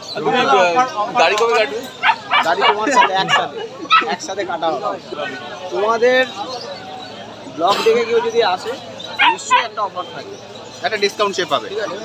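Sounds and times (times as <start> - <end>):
man talking: 0.2 - 6.4.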